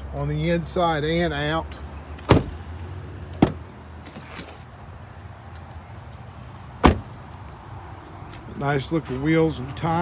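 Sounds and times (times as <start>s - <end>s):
car door closing with a thunk: 2.3s - 2.6s, 3.4s - 3.6s, 6.8s - 7.1s.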